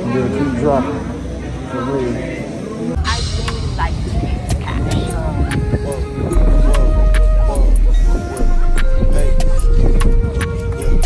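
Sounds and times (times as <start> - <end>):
people's voices: 0.0 - 11.0
traffic rumble: 0.0 - 11.0
music: 3.0 - 11.0.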